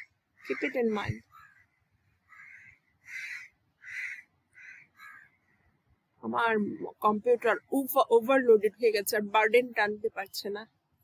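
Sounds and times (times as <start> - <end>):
bird calling: 0.0 - 5.8.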